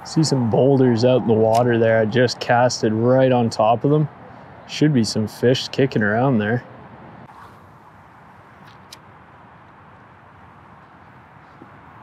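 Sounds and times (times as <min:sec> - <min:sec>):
faint low shoreline rush: 0:00.0 - 0:12.0.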